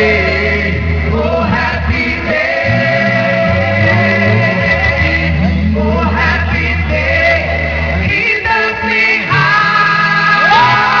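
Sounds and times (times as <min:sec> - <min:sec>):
vocal group singing gospel: 0:00.0 - 0:11.0.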